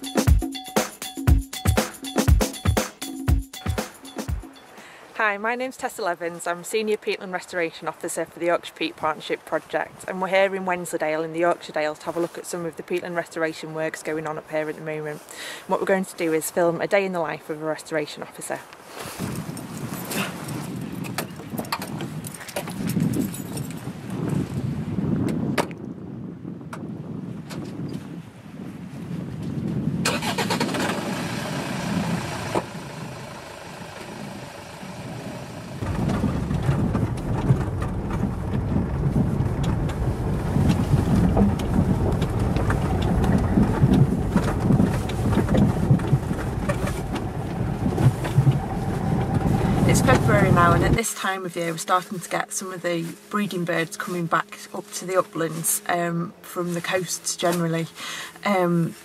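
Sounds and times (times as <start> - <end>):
car engine rumble: 30.0 - 51.0.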